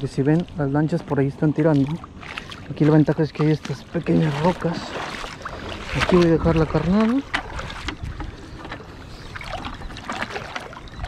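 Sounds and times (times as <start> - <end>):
water lapping around rocks: 0.0 - 11.0.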